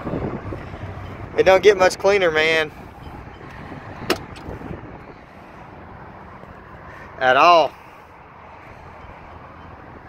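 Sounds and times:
car door latch clicking: 4.0 - 4.5.

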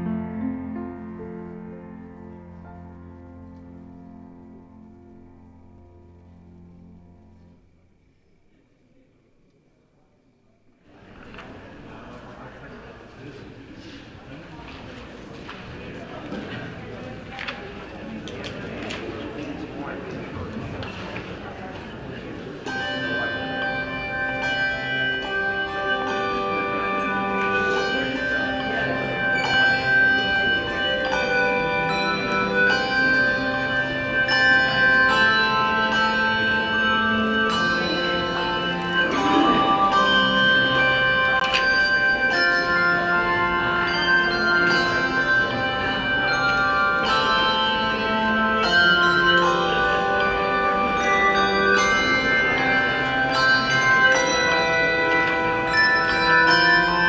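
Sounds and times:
handbell choir ringing chords: 22.4 - 57.0.

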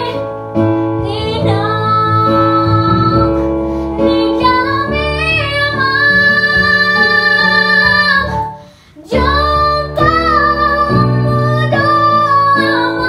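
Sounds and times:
girl singing: 0.0 - 13.0
instrumental accompaniment: 0.0 - 13.0.

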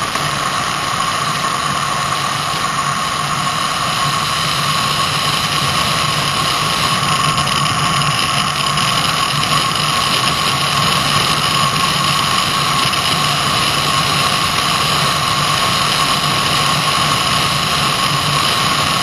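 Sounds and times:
thin steady whine: 0.0 - 19.0
wheels rolling on asphalt: 0.0 - 19.0.

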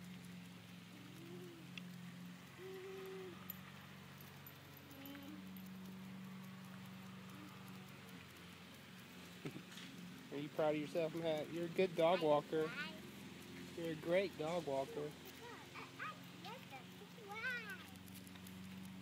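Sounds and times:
faint low hum: 0.0 - 14.6
outdoor ambience: 0.0 - 19.0.

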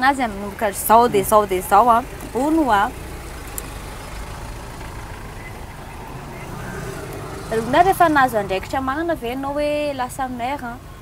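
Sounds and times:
motor vehicle rumbling: 0.0 - 11.0.

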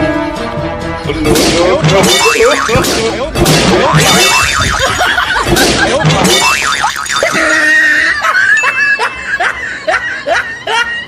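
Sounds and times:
boing-like wobbling sounds: 1.8 - 7.8
cartoon laughter: 2.0 - 2.9, 3.8 - 11.0.

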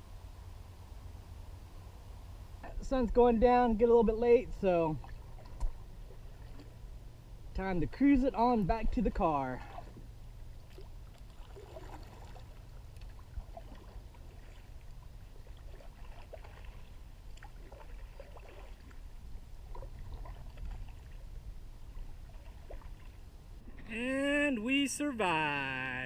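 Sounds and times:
low steady rumble: 0.0 - 26.0
paddle splashes: 4.6 - 6.8, 8.9 - 24.6
loud voice: 23.9 - 26.0.

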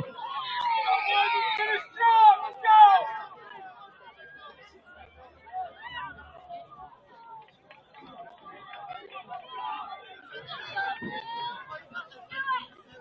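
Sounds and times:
chatter and calling voices: 0.0 - 13.0.

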